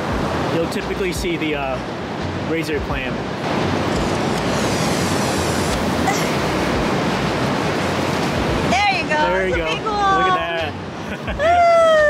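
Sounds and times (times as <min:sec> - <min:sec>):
ocean surf rushing: 0:00.0 - 0:12.0.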